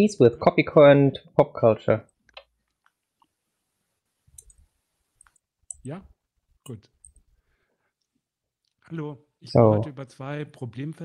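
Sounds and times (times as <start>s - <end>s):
faint clicks: 4.3s - 5.9s
person speaking a word: 9.5s - 10.0s.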